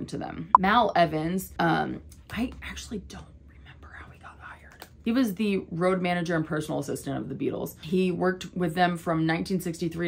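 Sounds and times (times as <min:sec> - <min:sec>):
woman whispering: 0:03.7 - 0:04.8.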